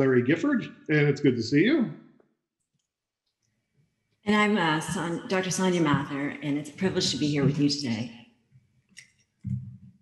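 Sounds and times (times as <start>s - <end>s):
end of a spoken word: 0.0s - 1.9s.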